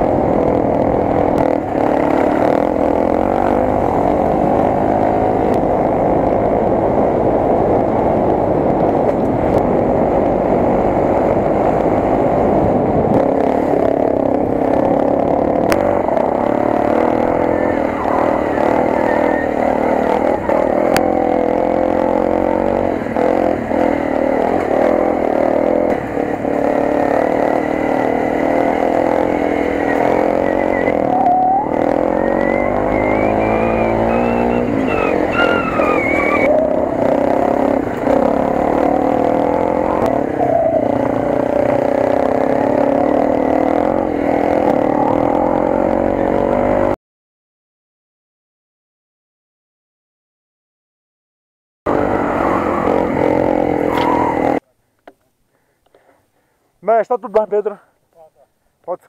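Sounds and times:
off-road motorcycle engine revving: 0.0s - 47.0s, 51.9s - 54.7s.

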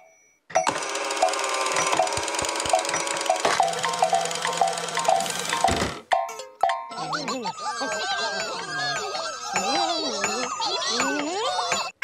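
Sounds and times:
whimsical mechanical sound effect: 0.6s - 6.0s.

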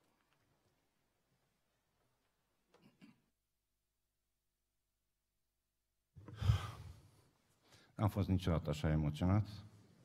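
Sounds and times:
man sighing: 6.2s - 7.0s.

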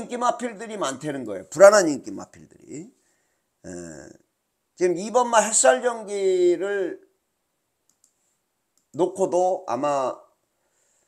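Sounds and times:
computer mouse clicks: 7.8s - 8.2s.

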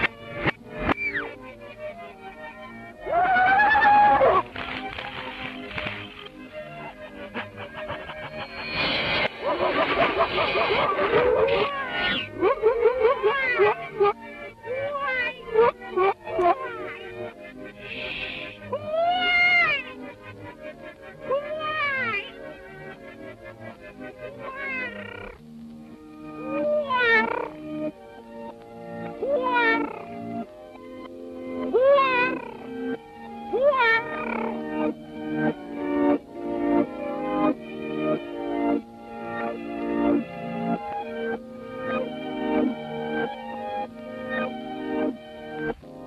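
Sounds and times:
orchestral cartoon music: 0.0s - 46.0s
cartoon cat yowls: 3.0s - 4.4s, 11.2s - 13.8s, 18.8s - 19.8s, 24.4s - 25.3s, 26.5s - 27.5s, 29.2s - 30.0s, 31.7s - 32.6s, 33.6s - 34.5s
cartoon dog yelps and barks: 11.1s - 13.9s.

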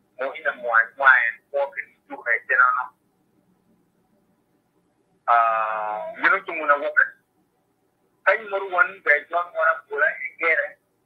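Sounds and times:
man speaking: 0.2s - 3.0s, 5.3s - 7.2s, 8.3s - 10.8s.

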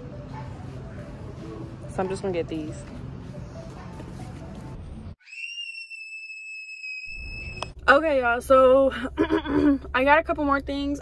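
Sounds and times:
faint store background noise: 0.0s - 5.2s
high whistle-like tone: 5.2s - 7.8s.

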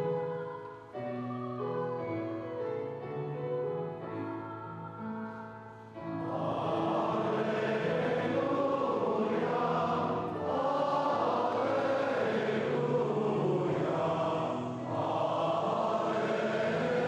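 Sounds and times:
congregation singing in unison: 6.1s - 17.0s.

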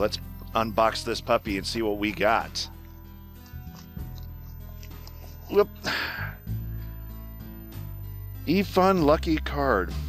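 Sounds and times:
man's voice: 0.0s - 2.7s, 8.4s - 10.0s
background music with low notes: 0.0s - 10.0s
breathy exhale: 5.8s - 6.5s.

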